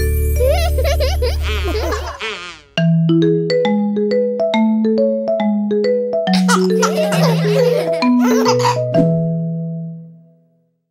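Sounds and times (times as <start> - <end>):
children laughing and talking: 0.4 - 2.7, 6.4 - 8.6.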